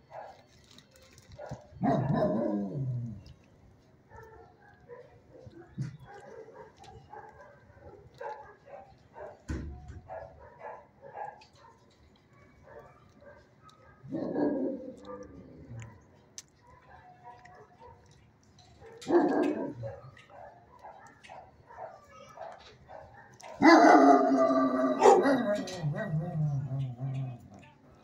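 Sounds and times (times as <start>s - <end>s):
dogs barking: 0.0s - 0.5s, 1.3s - 3.2s, 4.1s - 18.2s, 18.8s - 27.8s.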